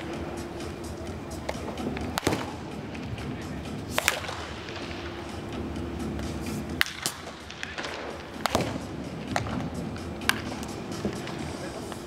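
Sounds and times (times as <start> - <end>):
background music: 0.0 - 12.0
bat cracking on baseball: 0.0 - 12.0.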